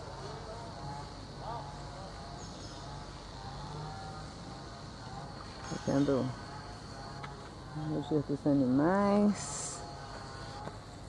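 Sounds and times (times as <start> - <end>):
faint far-off voices: 0.0 - 10.9.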